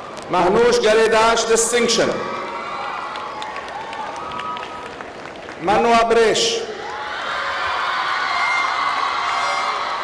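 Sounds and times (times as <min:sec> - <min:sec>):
audience applauding and cheering: 0:02.0 - 0:05.9, 0:06.7 - 0:10.0.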